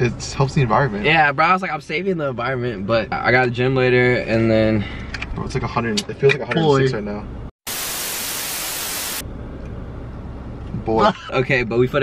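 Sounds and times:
static hiss burst: 7.6s - 9.2s.

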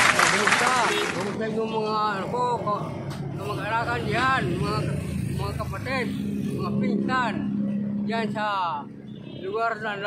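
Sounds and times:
man talking: 0.1s - 10.0s.

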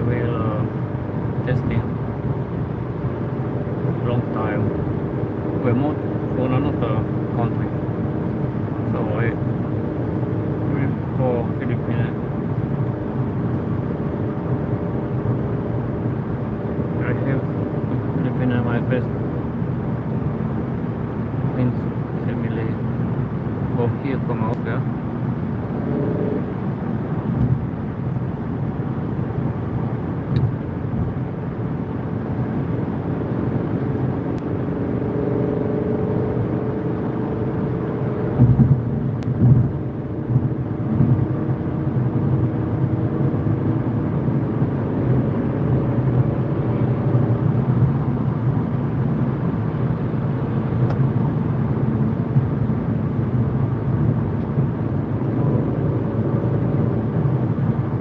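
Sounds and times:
car road and engine noise: 0.0s - 58.0s.

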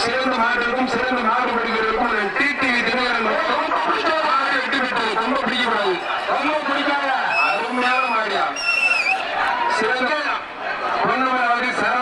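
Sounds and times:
man talking: 0.0s - 8.6s.

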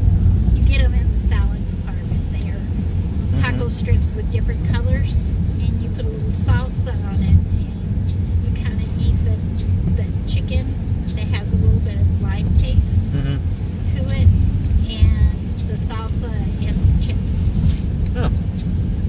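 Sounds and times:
car driving on road: 0.0s - 19.0s
people talking: 0.5s - 2.7s, 3.3s - 18.4s.

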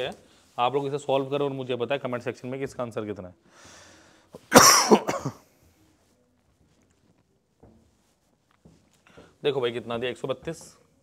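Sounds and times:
man coughing: 4.5s - 5.5s.

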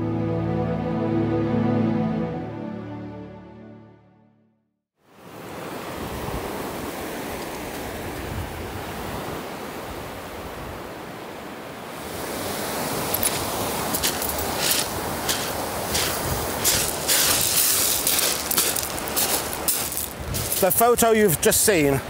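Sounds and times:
sea waves washing onto beach: 5.1s - 22.0s.

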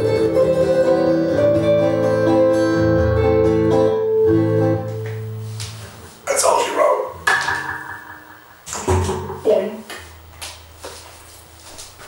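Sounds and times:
guitar amplifier hum: 0.0s - 11.8s
footsteps on wooden floor: 10.0s - 12.0s.

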